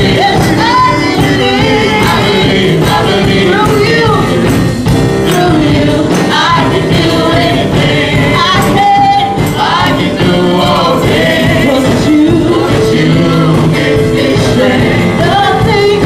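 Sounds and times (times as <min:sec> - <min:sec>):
choir singing gospel: 0:00.0 - 0:16.0
instrumental accompaniment: 0:00.0 - 0:16.0.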